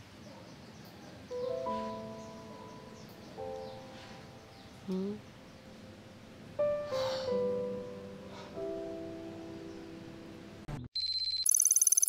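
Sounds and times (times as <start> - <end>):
soft piano music: 1.2 - 10.7
electronic ringtone trill: 11.0 - 12.0.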